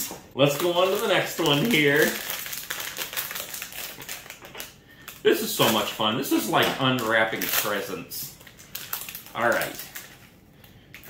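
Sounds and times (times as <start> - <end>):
foil wrapper crinkling: 0.0 - 11.0.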